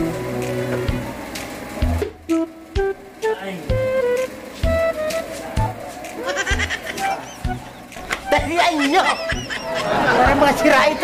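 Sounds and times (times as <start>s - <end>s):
background music with plucked notes: 0.0s - 11.0s.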